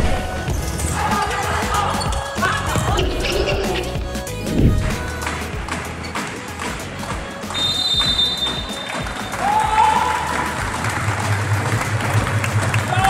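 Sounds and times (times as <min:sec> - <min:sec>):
music playing: 0:00.0 - 0:13.0
light clapping: 0:05.2 - 0:13.0.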